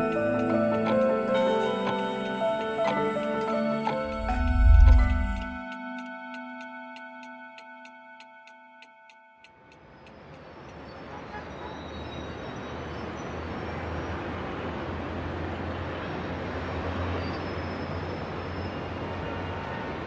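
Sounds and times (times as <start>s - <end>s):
film soundtrack music: 0.0s - 9.0s
clock-like ticking: 0.0s - 11.1s
traffic ambience with low rumble: 4.0s - 5.6s, 9.6s - 20.0s
deep low boom: 4.1s - 5.6s.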